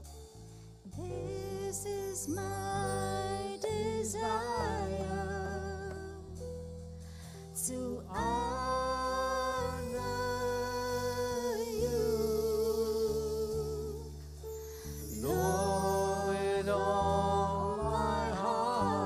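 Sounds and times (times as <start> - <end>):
bass guitar: 0.0 - 19.0
keyboard: 0.0 - 19.0.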